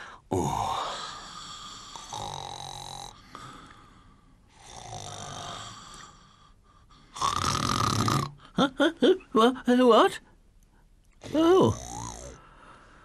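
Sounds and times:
cartoon snoring: 0.3s - 3.2s, 4.6s - 6.3s, 7.1s - 8.4s, 11.2s - 12.4s.

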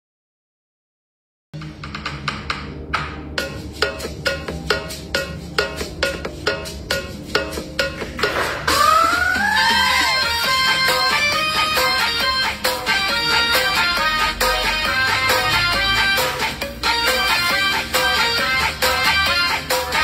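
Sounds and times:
clicking percussive beat: 1.6s - 20.0s
instrumental music: 1.6s - 20.0s
rising and falling sweep: 3.3s - 20.0s.

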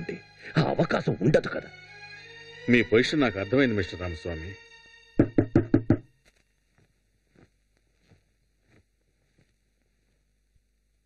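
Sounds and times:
knocks on wooden door: 5.2s - 6.1s.

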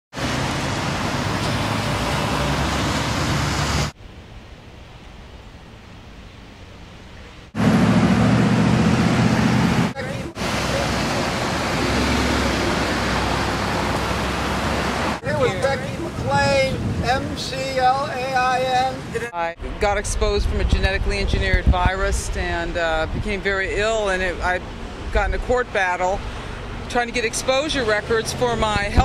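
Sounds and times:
low traffic rumble: 0.1s - 29.0s
roadside traffic rushing: 0.1s - 29.0s.

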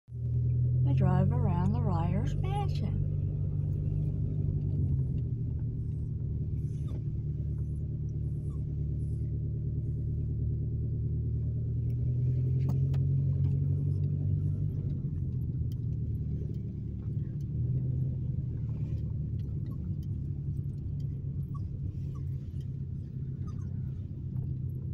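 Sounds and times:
car engine and road noise: 0.1s - 24.9s.

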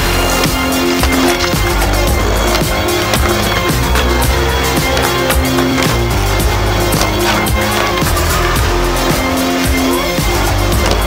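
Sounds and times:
music with steady beat: 0.0s - 11.0s
skateboard rolling on pavement: 0.0s - 11.0s.

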